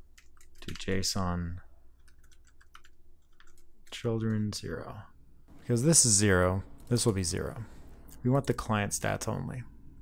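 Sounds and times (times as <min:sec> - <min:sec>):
keyboard typing: 0:00.0 - 0:01.0, 0:01.9 - 0:04.5.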